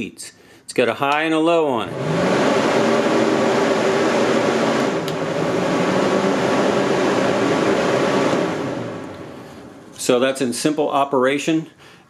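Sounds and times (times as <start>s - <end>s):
fan blowing roar and hum: 1.1s - 10.9s.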